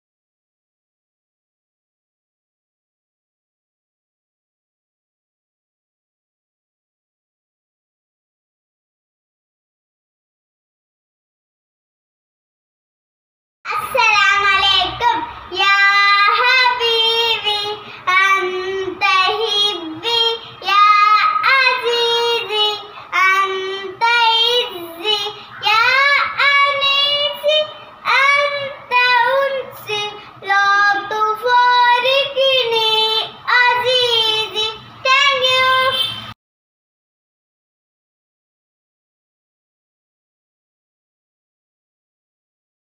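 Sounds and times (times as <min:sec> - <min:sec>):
girl singing unaccompanied: 0:13.7 - 0:36.4.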